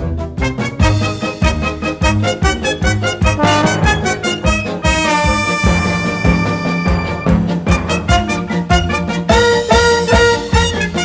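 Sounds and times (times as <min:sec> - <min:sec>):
orchestra brass with rhythmic beat: 0:00.0 - 0:11.0.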